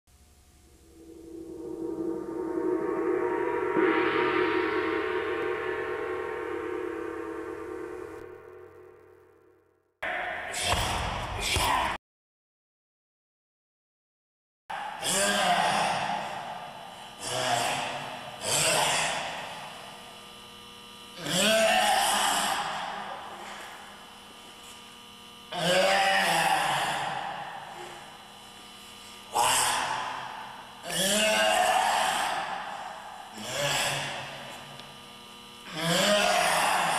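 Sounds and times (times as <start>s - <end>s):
low electrical hum: 0.1s - 9.6s, 15.0s - 36.9s
gong-like ringing chord: 0.6s - 9.7s.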